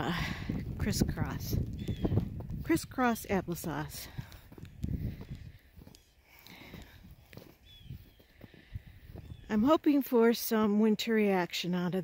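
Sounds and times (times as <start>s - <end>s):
footsteps crunching in snow: 0.2s - 9.8s.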